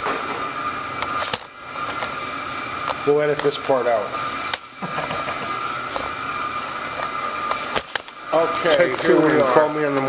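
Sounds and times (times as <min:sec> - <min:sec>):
boiler machinery drone with whine: 0:00.0 - 0:10.0.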